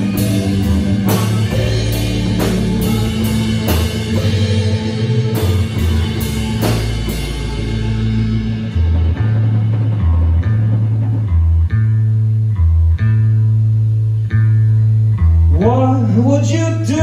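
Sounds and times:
live rock band playing: 0:00.0 - 0:15.0
bass guitar low notes: 0:00.0 - 0:17.0
picked electric guitar: 0:00.0 - 0:17.0.

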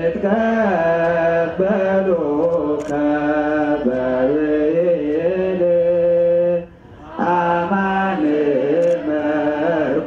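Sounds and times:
man chanting a hymn: 0:00.0 - 0:10.0.

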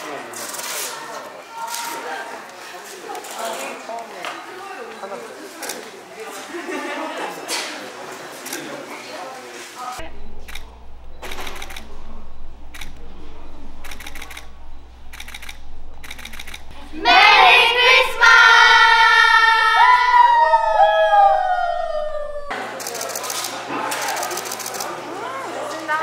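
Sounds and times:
quiet chatter: 0:00.0 - 0:26.0
sharp clicks: 0:10.0 - 0:16.8
women shouting together: 0:16.8 - 0:22.5.

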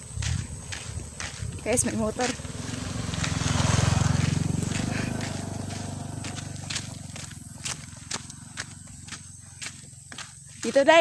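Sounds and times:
motorcycle engine passing by: 0:00.0 - 0:10.4.

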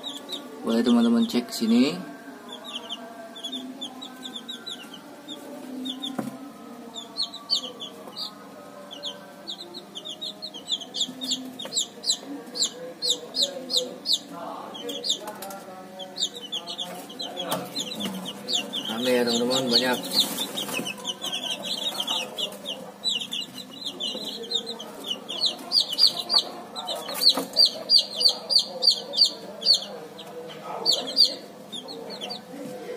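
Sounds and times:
chicks peeping: 0:00.0 - 0:32.9.

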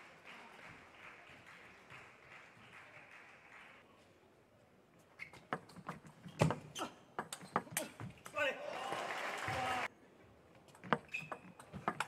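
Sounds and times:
crowd cheering: 0:08.4 - 0:09.9
loud shout: 0:08.4 - 0:09.9.

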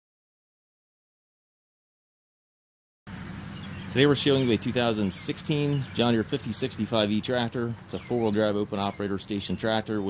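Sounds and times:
high chirping: 0:03.1 - 0:09.9.

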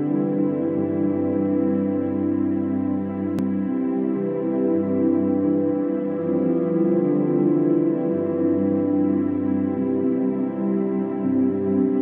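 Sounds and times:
ambient music sustained chords: 0:00.0 - 0:12.0.

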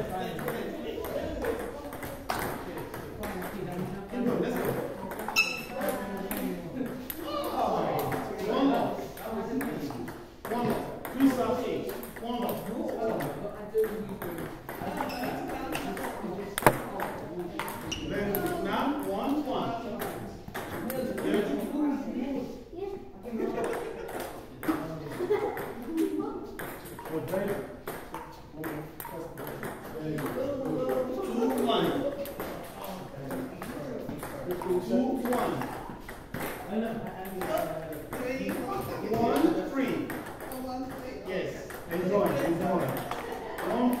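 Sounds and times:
table tennis balls clicking: 0:00.3 - 0:03.9, 0:13.8 - 0:17.8, 0:37.2 - 0:41.0, 0:41.6 - 0:44.0.

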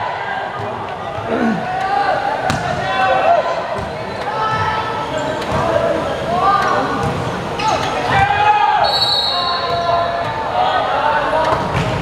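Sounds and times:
players and spectators shouting: 0:00.0 - 0:11.7
referee's whistle: 0:08.8 - 0:09.9.

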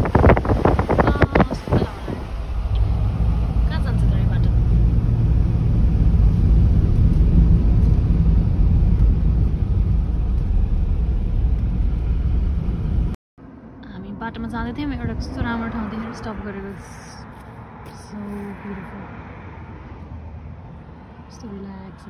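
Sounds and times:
vehicle engine and tyre rumble: 0:00.0 - 0:22.0.

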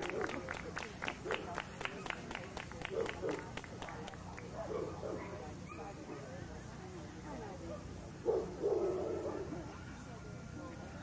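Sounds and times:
dog barking: 0:08.2 - 0:09.5.

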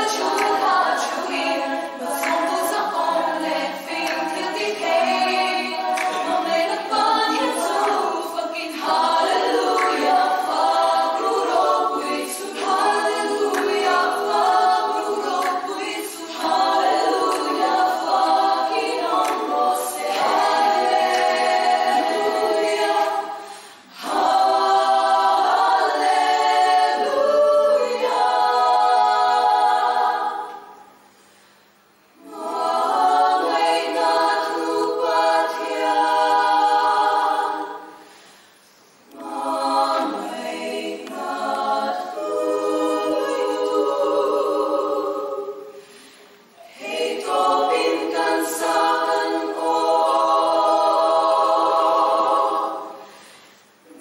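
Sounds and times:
women's choir singing a cappella: 0:00.0 - 0:31.4, 0:32.1 - 0:54.0.

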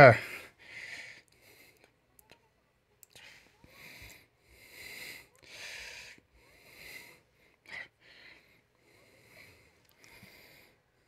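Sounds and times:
soft breaths: 0:00.0 - 0:11.0.

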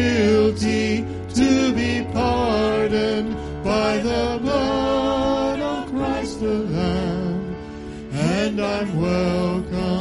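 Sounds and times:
man singing a hymn: 0:00.0 - 0:10.0
worship band playing: 0:00.0 - 0:10.0.

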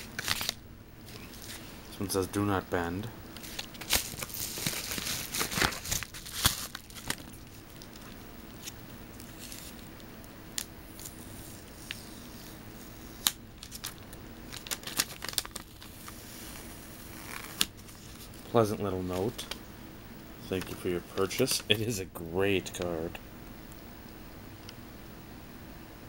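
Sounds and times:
paper crinkling: 0:00.0 - 0:01.7, 0:03.4 - 0:09.8, 0:13.2 - 0:18.5
paper mailer tearing: 0:03.5 - 0:07.2.

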